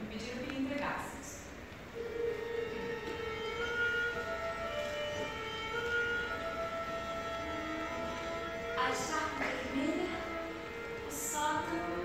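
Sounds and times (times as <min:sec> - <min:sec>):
orchestra playing held chords: 0:01.9 - 0:12.0.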